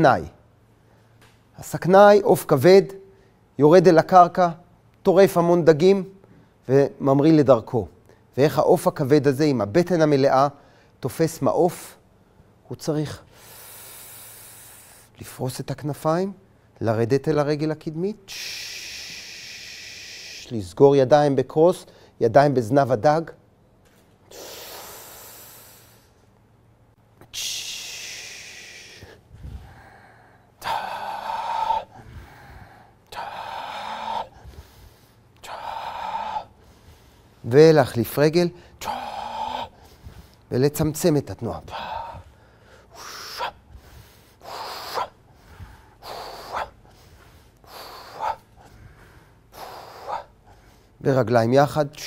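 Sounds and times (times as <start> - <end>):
man breathing out: 13.3 - 15.2, 18.3 - 20.5, 24.3 - 26.3, 27.2 - 37.4, 38.6 - 40.5, 41.6 - 51.0.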